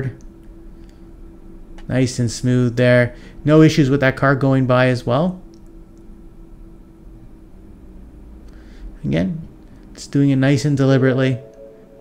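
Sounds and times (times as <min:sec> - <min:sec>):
faint even hum: 0:00.0 - 0:12.0.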